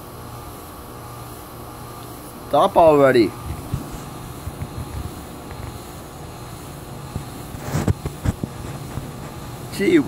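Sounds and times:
ceiling fan rumbling: 0.0s - 10.0s.

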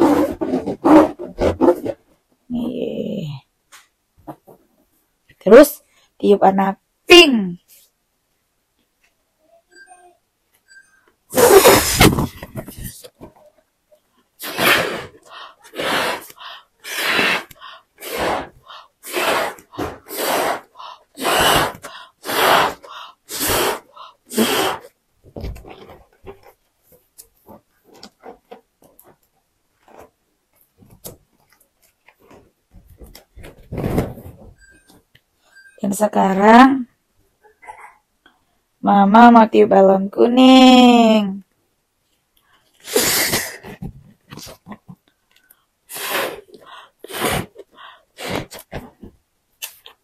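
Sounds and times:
person blowing up balloon: 0.0s - 2.0s, 11.3s - 12.4s, 14.4s - 25.0s, 42.8s - 43.8s, 45.9s - 48.9s.

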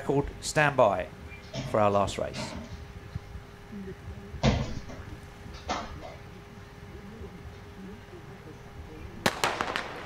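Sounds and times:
starting pistol shot: 9.2s - 10.0s.

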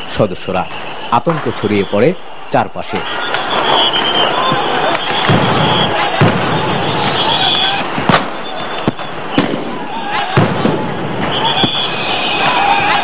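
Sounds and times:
large crowd shouting: 0.0s - 13.0s
sharp gunshot bangs: 5.1s - 7.2s, 8.0s - 8.4s, 9.4s - 11.8s.

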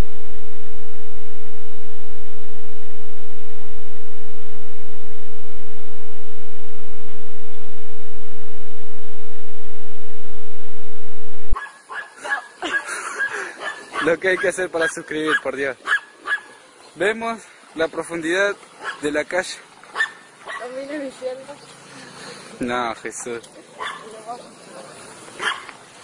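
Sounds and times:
steady electronic tone: 0.0s - 11.6s.

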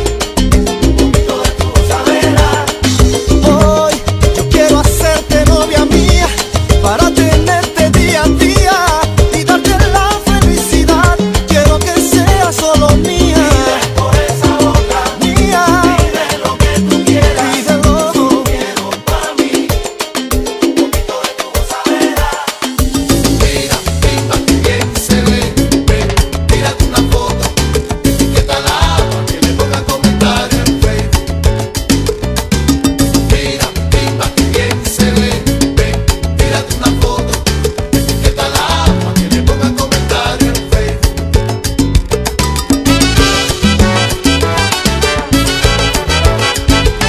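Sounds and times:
salsa band music: 0.0s - 47.0s.

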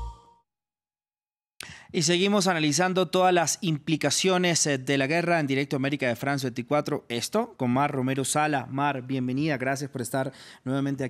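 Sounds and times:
news jingle note and bass: 0.0s - 0.4s
man speaking: 1.9s - 11.0s.

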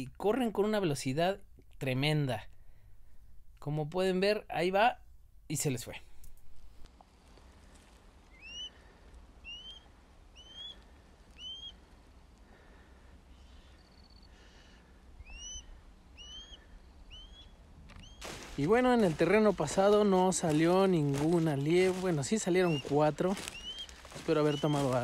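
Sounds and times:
faint wind: 0.0s - 25.0s
bird chirping: 8.3s - 11.9s, 13.3s - 14.4s, 15.1s - 25.0s.

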